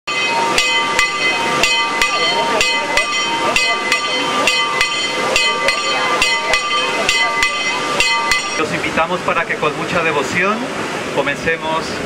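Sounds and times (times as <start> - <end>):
church bell ringing: 0.1 - 8.7.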